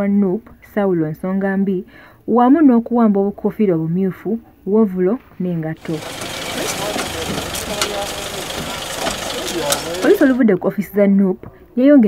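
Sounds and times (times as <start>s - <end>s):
hubbub of indistinct voices: 5.8s - 10.5s
vehicle engine running: 5.8s - 10.5s.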